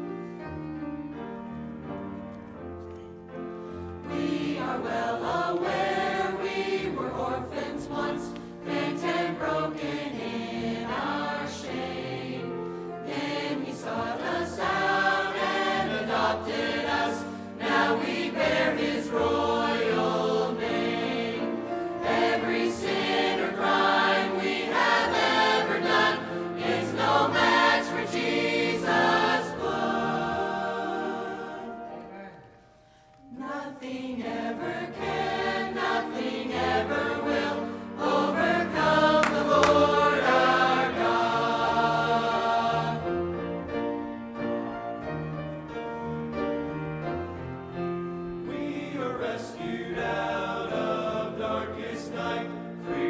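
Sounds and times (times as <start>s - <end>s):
choir singing: 3.8s - 45.2s, 47.0s - 53.0s.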